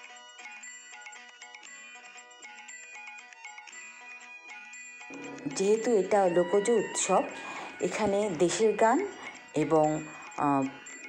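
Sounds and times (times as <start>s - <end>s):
electronic melody: 5.1s - 11.0s.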